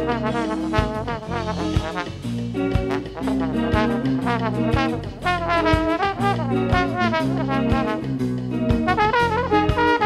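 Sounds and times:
live rock band playing: 0.0 - 10.0
trombone solo: 0.0 - 10.0.

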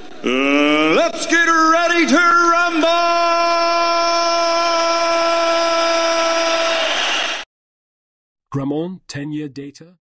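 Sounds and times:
man's drawn-out announcer shout: 0.3 - 6.7.

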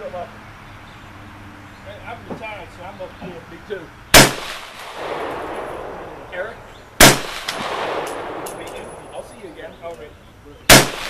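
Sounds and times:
pistol gunshot with echo: 4.2 - 6.3, 7.0 - 9.2, 10.7 - 11.0
faint distant gunshot: 4.2 - 9.5, 10.7 - 11.0.

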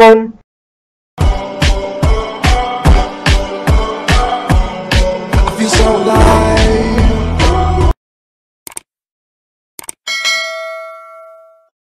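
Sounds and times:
bright bell chime: 10.1 - 11.7.

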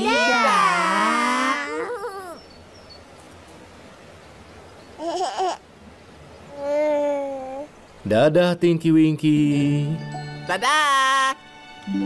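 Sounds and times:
cartoon voices saying aww: 0.0 - 2.4.

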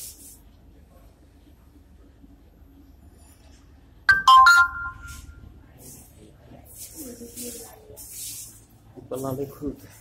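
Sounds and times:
electronic chime notes: 4.1 - 5.4.

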